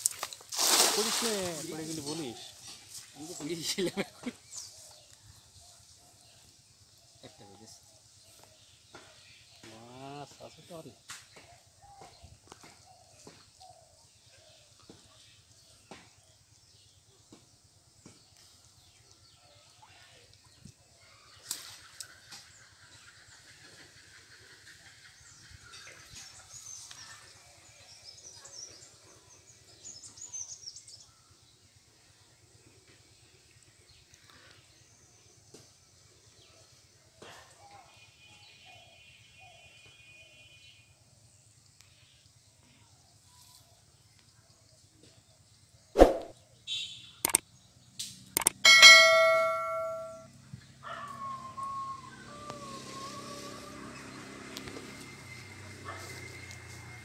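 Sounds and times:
clicks: 0:48.4 - 0:50.1
faint high chirps: 0:48.4 - 0:50.3
bell-like ringing chime: 0:48.6 - 0:50.3.

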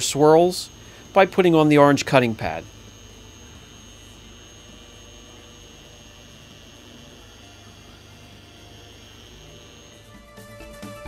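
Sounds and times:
car polisher motor whine: 0:00.0 - 0:11.0.

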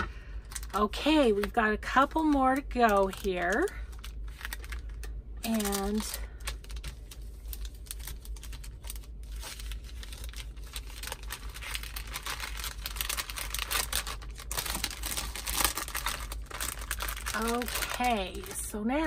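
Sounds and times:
plastic bag crinkling: 0:00.0 - 0:19.0.

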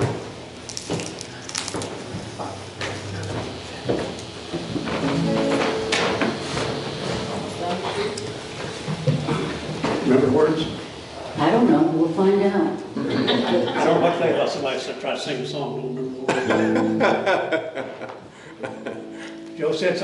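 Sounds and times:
guitars playing notes and chords: 0:04.2 - 0:08.8, 0:16.4 - 0:17.5, 0:18.5 - 0:20.0.

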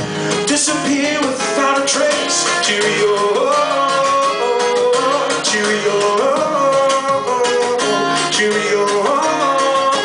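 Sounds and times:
acoustic guitar picked and strummed: 0:00.0 - 0:10.0
man singing: 0:00.0 - 0:10.0.

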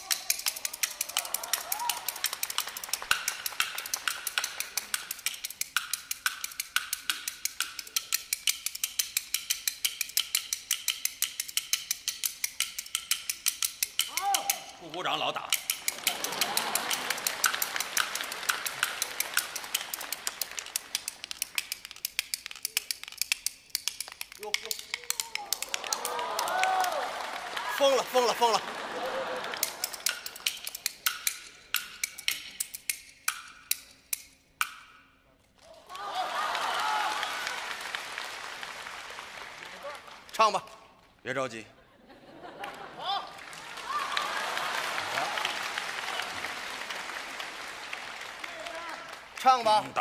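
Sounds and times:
bamboo clappers clicking: 0:00.0 - 0:27.1, 0:27.7 - 0:35.2
person speaking: 0:24.3 - 0:26.5, 0:27.6 - 0:28.7.

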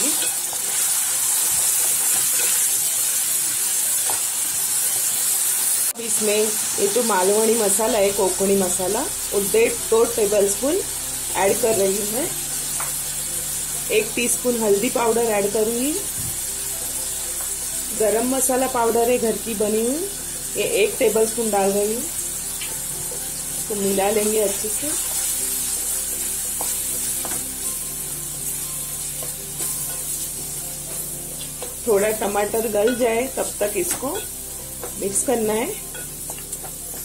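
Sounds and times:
onion and tomato frying in oil: 0:00.0 - 0:37.0.

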